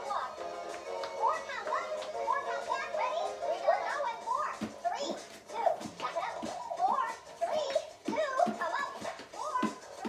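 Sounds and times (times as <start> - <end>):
background music: 0.0 - 10.0
feet thumping on plastic step: 4.4 - 10.0.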